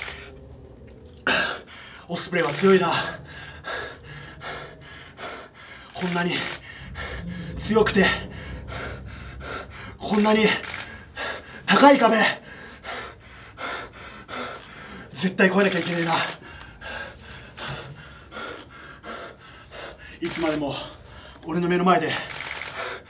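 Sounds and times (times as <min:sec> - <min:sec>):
man gasping and panting: 0:01.3 - 0:15.4, 0:16.2 - 0:21.5.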